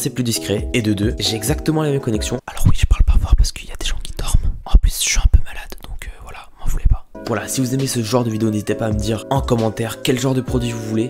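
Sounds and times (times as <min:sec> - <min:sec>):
man whispering into microphone: 0:02.4 - 0:08.2
microphone handling thumps: 0:02.6 - 0:07.1.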